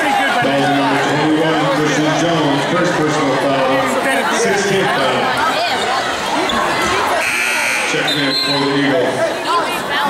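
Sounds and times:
crowd chatter: 0.0 - 10.0
scoreboard horn: 7.2 - 8.6.

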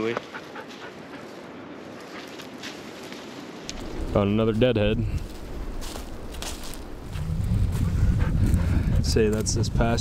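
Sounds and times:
wind buffeting microphone: 3.7 - 10.0.

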